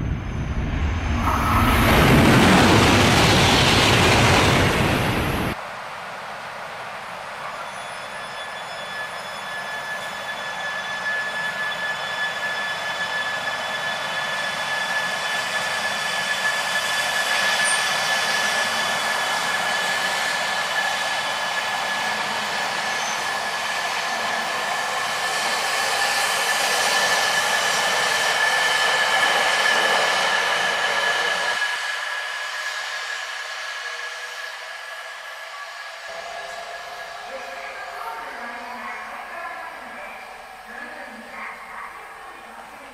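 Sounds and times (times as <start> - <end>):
train running past: 0.0 - 42.9.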